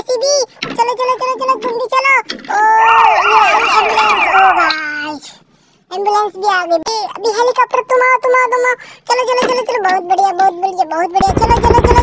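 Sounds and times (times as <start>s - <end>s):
toy siren warbling: 2.5s - 4.8s.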